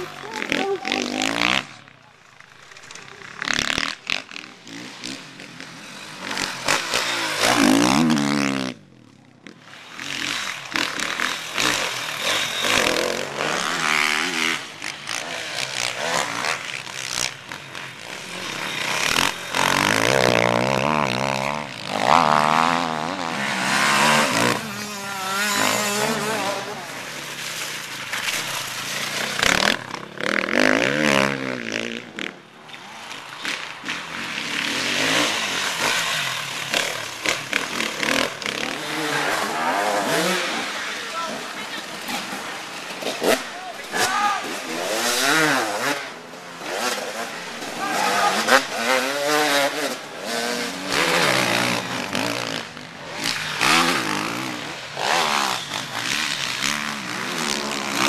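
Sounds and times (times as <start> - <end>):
voices: 0.0 - 3.8, 23.1 - 27.4, 38.6 - 49.1
motorcycle engines revving: 0.0 - 58.0.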